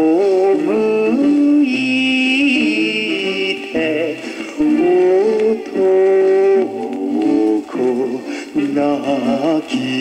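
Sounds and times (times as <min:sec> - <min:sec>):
pop record on turntable: 0:00.0 - 0:10.0.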